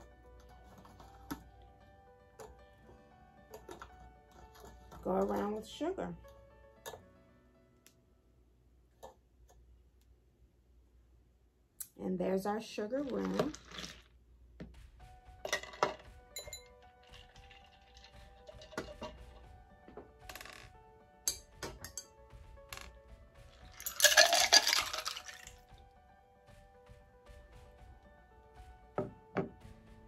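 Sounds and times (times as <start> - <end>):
faint background music: 0.0 - 9.2, 11.8 - 30.0
drink poured over ice: 13.1 - 14.1, 16.8 - 19.4, 23.7 - 25.6
spoon clinking against glass: 15.5 - 19.2, 23.8 - 25.5.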